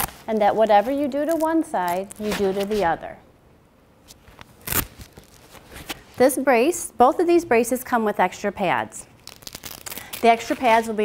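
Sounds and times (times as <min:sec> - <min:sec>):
velcro strap ripping open: 0:00.0 - 0:00.3, 0:01.1 - 0:02.9, 0:04.4 - 0:06.1, 0:09.0 - 0:10.9.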